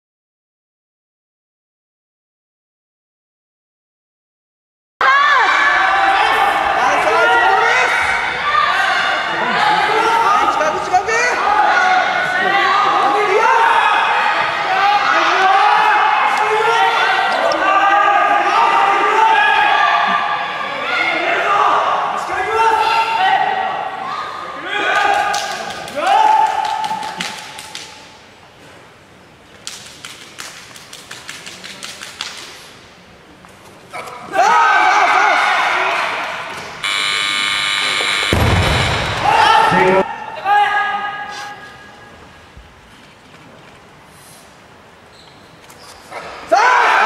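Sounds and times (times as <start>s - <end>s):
people shouting: 5.0s - 10.7s, 34.2s - 36.3s, 38.4s - 41.9s, 46.5s - 47.0s
electronic buzzer: 36.8s - 40.0s.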